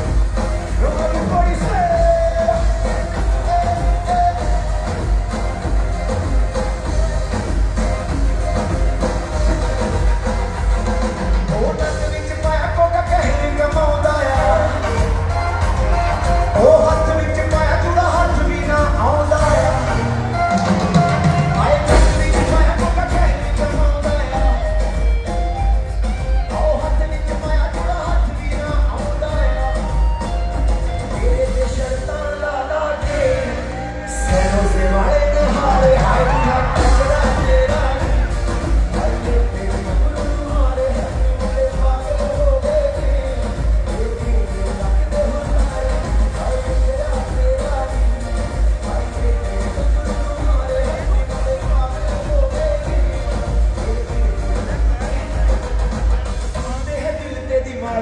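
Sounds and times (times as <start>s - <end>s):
amplified band with heavy bass: 0.0s - 58.0s
man singing: 0.0s - 58.0s.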